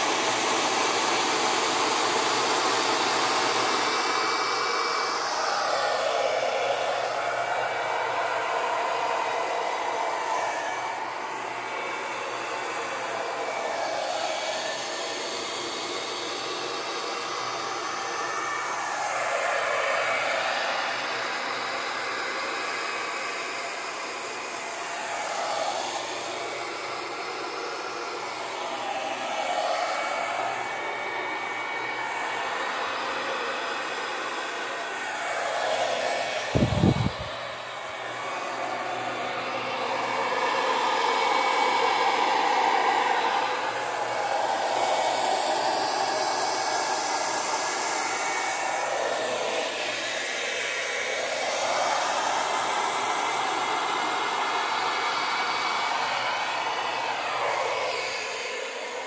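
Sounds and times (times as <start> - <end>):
hair dryer blowing: 0.0 - 59.0.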